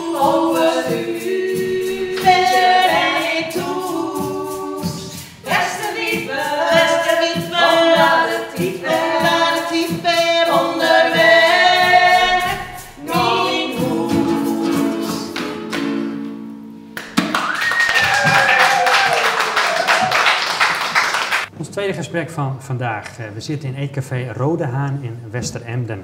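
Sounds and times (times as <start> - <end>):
women singing in harmony: 0.0 - 15.7
ukulele: 0.0 - 17.5
applause: 17.0 - 21.5
crowd cheering: 17.0 - 21.5.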